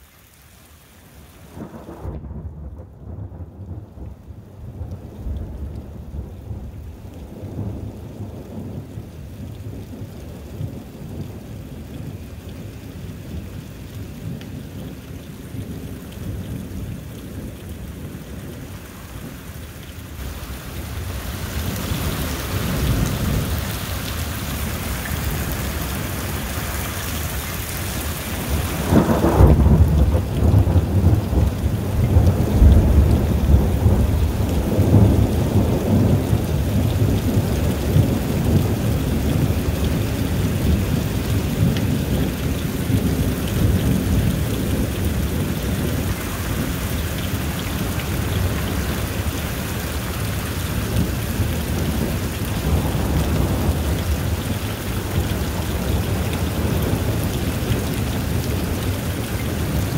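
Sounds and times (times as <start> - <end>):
rain falling: 0.0 - 59.9
thunder rumbling: 1.5 - 12.3, 20.2 - 59.9.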